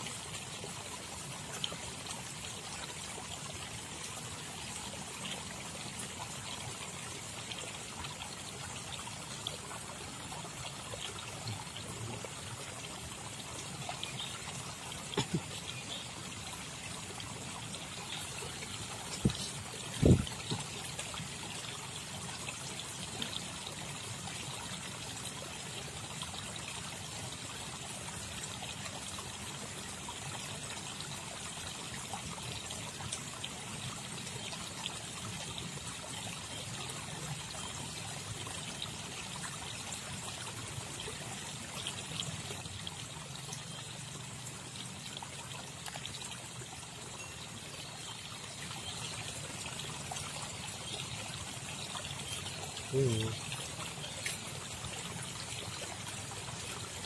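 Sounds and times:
stream water trickling: 0.0s - 57.0s.

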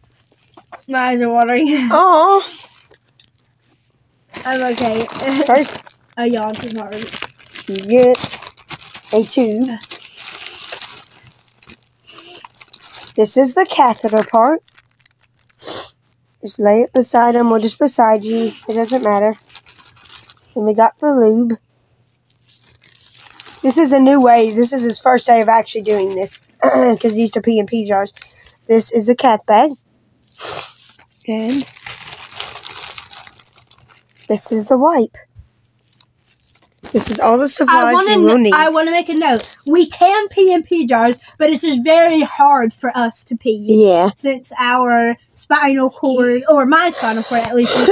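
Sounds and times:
plastic package crinkling: 0.1s - 1.0s, 2.4s - 3.6s, 4.3s - 20.7s, 22.1s - 28.6s, 30.2s - 34.7s, 35.6s - 40.0s.

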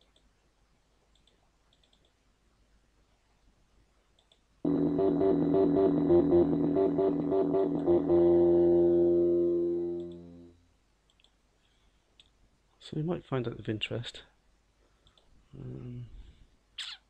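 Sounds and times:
repeating bass synth notes: 4.7s - 10.5s
held synth tone: 4.7s - 10.6s.

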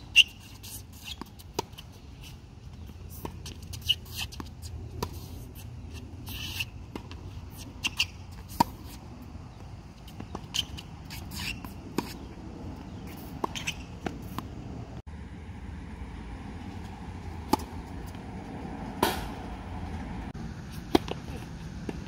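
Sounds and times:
outdoor background hum: 0.0s - 22.0s
tennis balls bouncing on hard court: 0.1s - 14.8s, 16.6s - 20.3s, 20.9s - 22.0s
tennis balls struck by rackets: 0.2s - 14.8s, 17.0s - 22.0s.

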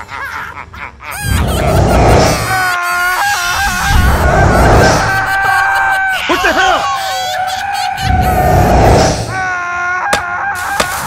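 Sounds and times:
deep rumbling noise: 1.3s - 2.7s, 3.3s - 6.2s, 8.0s - 9.4s.

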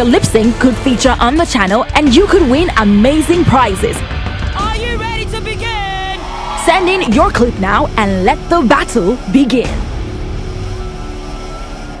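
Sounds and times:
rushing droning noise: 2.4s - 12.0s.

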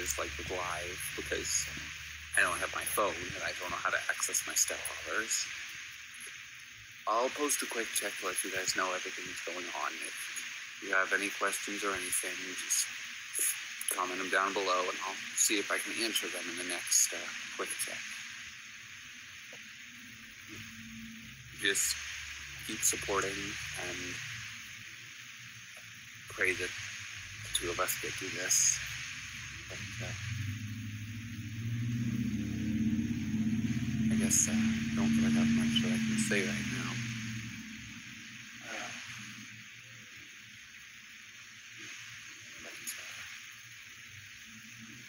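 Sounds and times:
man saying uh: 0.0s - 1.8s, 2.4s - 5.4s, 7.1s - 10.2s, 10.8s - 12.8s, 13.4s - 18.0s, 21.6s - 22.0s, 22.7s - 24.2s, 26.3s - 26.7s, 27.5s - 28.8s, 29.7s - 30.2s, 34.1s - 37.1s
faint low hum: 0.0s - 45.0s
recording hiss: 0.0s - 45.0s.

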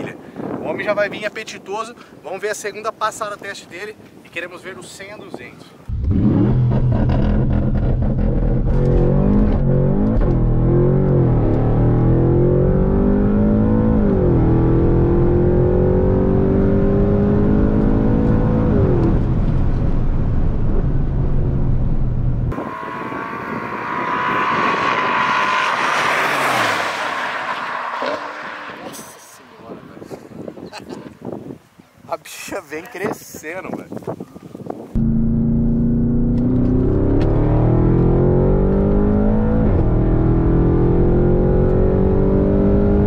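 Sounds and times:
wind on microphone: 0.0s - 10.6s, 17.2s - 35.1s
car engine at full throttle: 5.9s - 29.2s, 35.0s - 43.0s.

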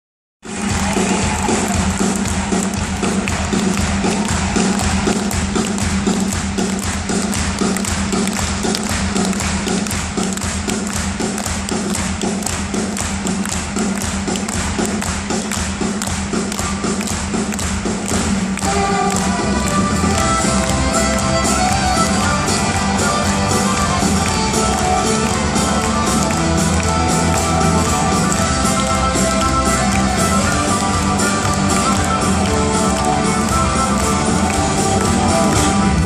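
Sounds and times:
thudding drum beat: 0.4s - 36.0s
folk-rock band playing: 0.5s - 36.0s
fiddle melody: 18.6s - 36.0s.

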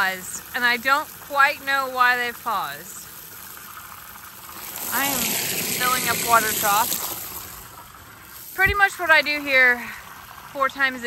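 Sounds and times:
water running from a hose: 0.0s - 11.0s.

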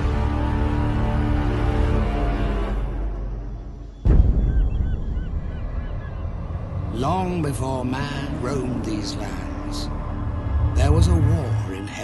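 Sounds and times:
birds calling: 3.7s - 7.4s.

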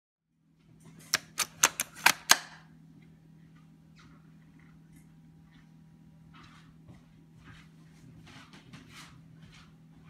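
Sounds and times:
low steady hum: 0.3s - 10.0s.

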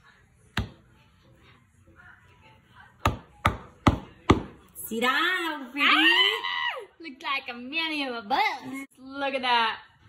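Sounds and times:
mallet hammering nail: 3.1s - 4.6s.

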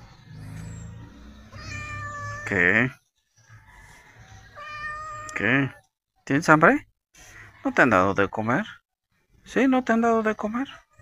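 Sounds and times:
kitten meowing: 1.5s - 2.6s, 4.6s - 5.4s.

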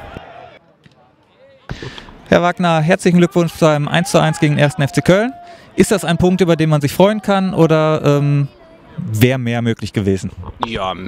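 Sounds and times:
faint voices: 0.0s - 9.4s
open-air background noise: 0.0s - 11.0s.

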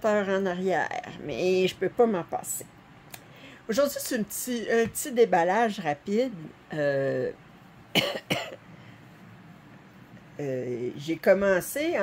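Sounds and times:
electric fan running: 0.0s - 12.0s
woman coughing: 7.9s - 8.6s.

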